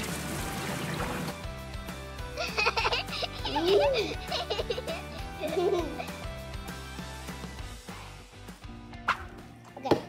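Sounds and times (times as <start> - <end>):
music with held tones: 0.0 - 8.5.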